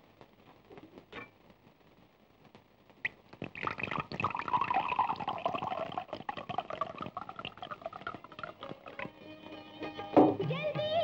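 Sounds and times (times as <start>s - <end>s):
liquor gurgling into a glass: 3.4s - 9.1s.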